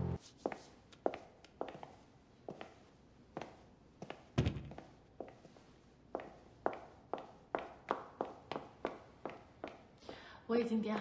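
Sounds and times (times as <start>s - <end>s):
footsteps on stone floor: 0.4s - 2.8s.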